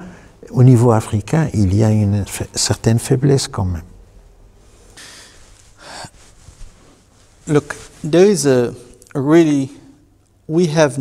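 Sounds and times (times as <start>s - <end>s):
man breathing in: 4.9s - 6.5s.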